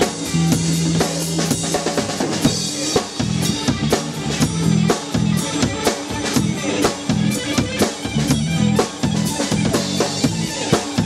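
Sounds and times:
bass line: 0.0s - 11.0s
drum beat: 0.0s - 11.0s
electric guitar: 0.0s - 11.0s.

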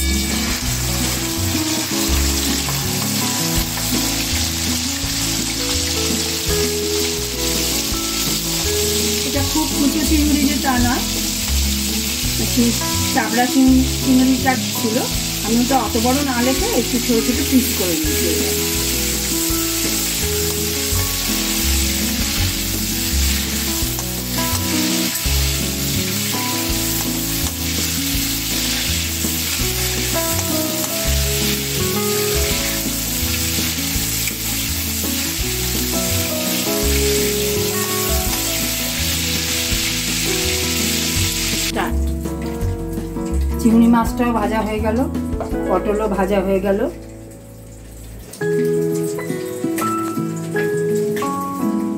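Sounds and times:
background music: 0.0s - 51.9s
prawns sizzling in hot oil: 0.0s - 51.9s.

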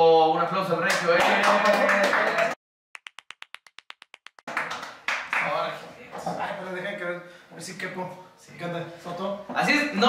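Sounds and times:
hand claps: 0.9s - 5.6s.

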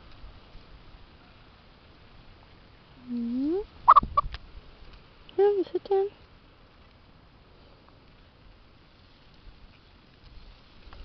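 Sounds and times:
chicken calling: 3.9s - 4.3s
chicken squawking: 3.9s - 4.3s.

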